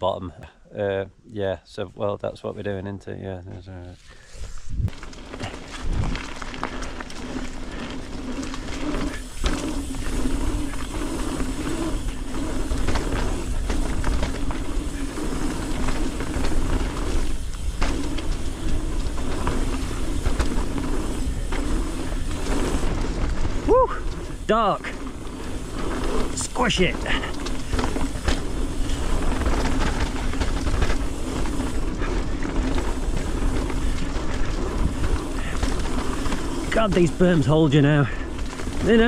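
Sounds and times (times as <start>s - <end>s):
bike tyres rolling and rattling: 0.0s - 39.0s.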